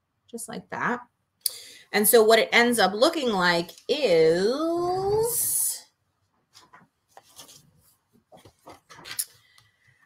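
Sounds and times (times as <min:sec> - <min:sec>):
paper rustling: 0:06.5 - 0:09.8.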